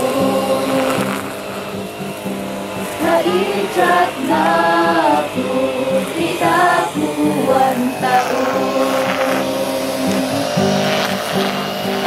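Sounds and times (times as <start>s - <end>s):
acoustic guitar chords: 0.0s - 12.0s
choir holding a long note: 0.0s - 12.0s.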